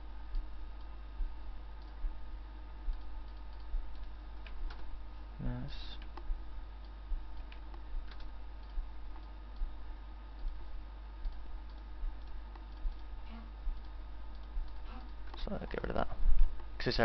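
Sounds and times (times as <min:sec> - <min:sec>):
low electrical hum: 0:00.0 - 0:17.0
faint regular ticking: 0:00.2 - 0:17.0.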